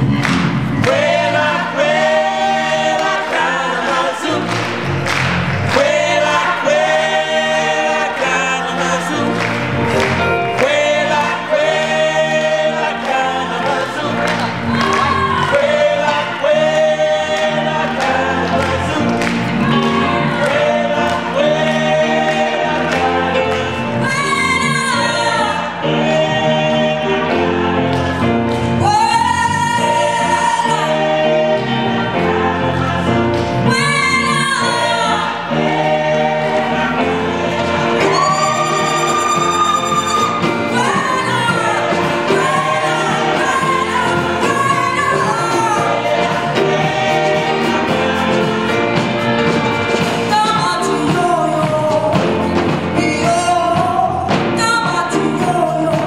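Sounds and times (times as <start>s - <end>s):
gospel choir singing: 0.0s - 56.0s.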